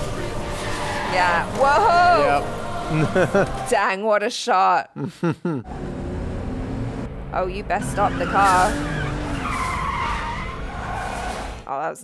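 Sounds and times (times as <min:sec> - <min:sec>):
car tyres squealing on dirt: 0:00.4 - 0:02.0, 0:07.7 - 0:11.7.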